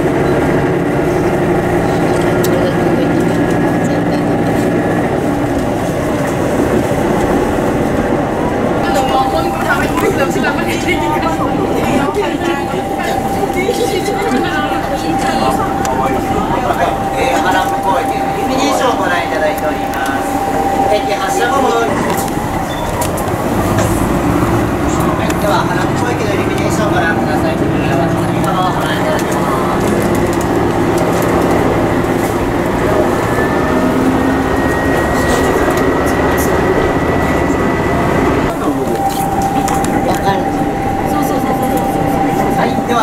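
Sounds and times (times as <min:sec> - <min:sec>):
passengers talking: 0:00.0 - 0:43.0
train running rumble: 0:00.0 - 0:43.0.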